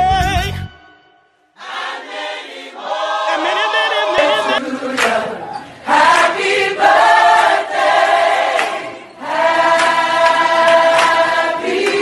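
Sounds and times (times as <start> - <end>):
choir singing slow song: 1.5 - 12.0.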